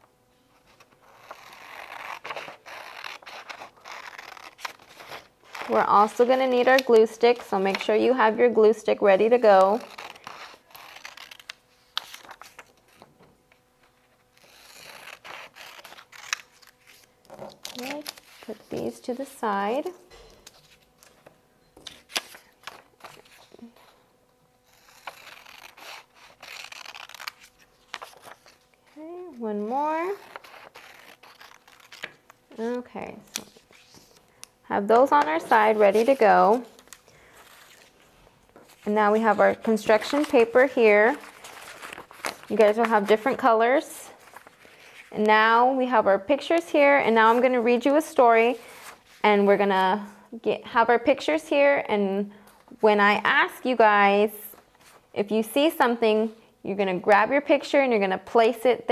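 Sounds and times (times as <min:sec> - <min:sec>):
scissors cutting paper: 0:00.7 - 0:08.3, 0:09.3 - 0:13.1, 0:14.3 - 0:19.2, 0:24.6 - 0:28.6, 0:29.3 - 0:34.2, 0:34.9 - 0:37.9, 0:38.7 - 0:44.5.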